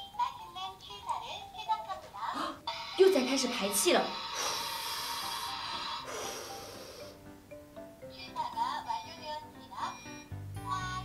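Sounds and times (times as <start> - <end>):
toy rice cooker hissing: 2.6 - 7.2
toy playing short tune: 8.8 - 11.0.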